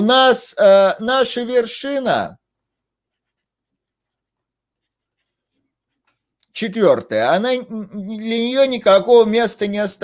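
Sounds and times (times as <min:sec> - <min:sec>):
stylus scratching on tablet: 0:02.6 - 0:06.4.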